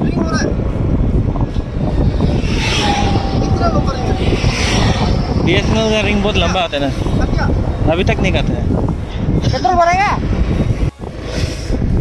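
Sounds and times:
engine and wind rumble: 0.0s - 12.0s
hissing rush: 1.1s - 12.0s.

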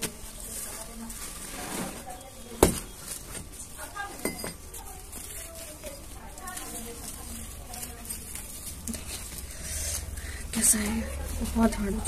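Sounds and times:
metal tool clinking on dirt: 4.1s - 4.6s.

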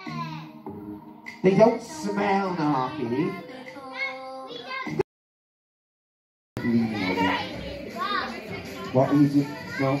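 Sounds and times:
children chattering and calling out: 0.0s - 0.6s, 2.5s - 5.0s, 6.6s - 10.0s.

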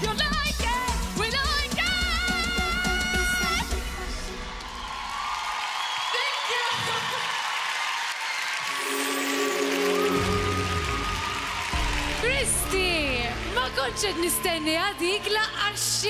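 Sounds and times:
audience applauding and cheering: 2.4s - 16.0s.

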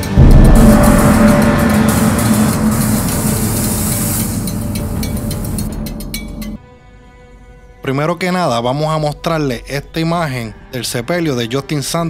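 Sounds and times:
loud intro music: 0.0s - 6.6s.

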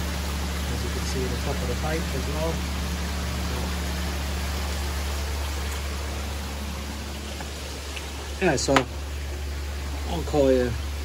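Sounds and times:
pump hum: 0.0s - 11.0s
rushing aerated water: 0.0s - 11.0s.

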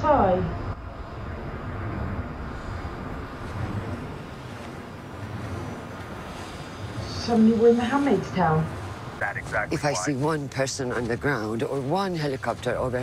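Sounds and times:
low rumble: 0.0s - 13.0s
wind-like rushing noise: 0.0s - 13.0s.

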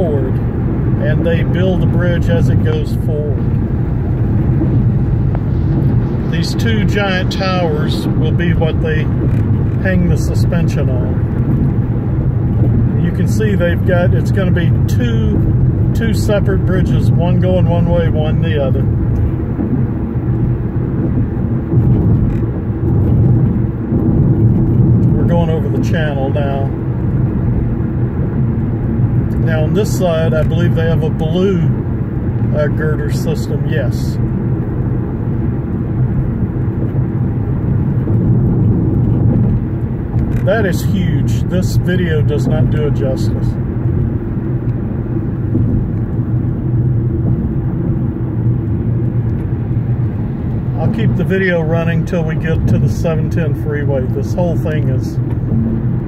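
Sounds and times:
car road and engine rumble: 0.0s - 56.0s
man speaking: 1.0s - 3.4s, 6.3s - 9.1s, 9.8s - 11.2s, 13.0s - 15.4s, 16.0s - 18.9s, 25.2s - 26.7s, 29.4s - 31.8s, 32.5s - 34.2s, 40.4s - 43.6s, 50.8s - 55.2s.

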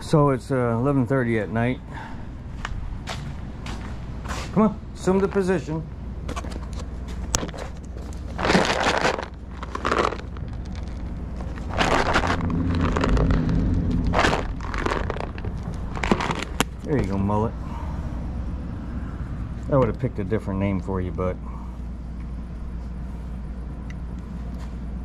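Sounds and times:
plastic tub of treats rattling: 8.3s - 17.1s.

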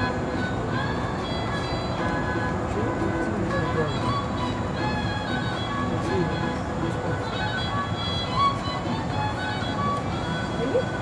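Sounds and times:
faint music with held notes: 0.0s - 11.0s
low outdoor rumble: 0.0s - 11.0s.

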